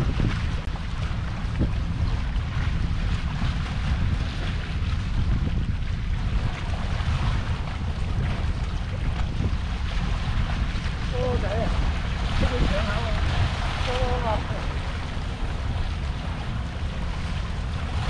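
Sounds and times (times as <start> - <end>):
sea noise: 0.0 - 18.0
wind buffeting microphone: 0.0 - 18.0.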